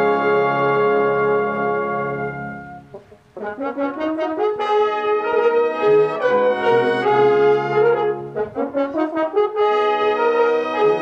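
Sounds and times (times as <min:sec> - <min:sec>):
brass choir playing chords: 0:00.0 - 0:11.0.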